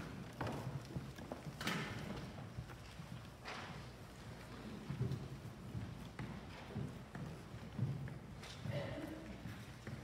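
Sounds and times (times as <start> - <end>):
footsteps on church floor: 0.0 - 10.0.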